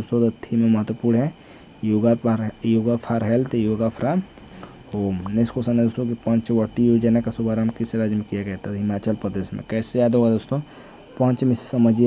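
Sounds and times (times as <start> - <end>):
crickets chirring: 0.0 - 12.0
man talking: 0.0 - 12.0.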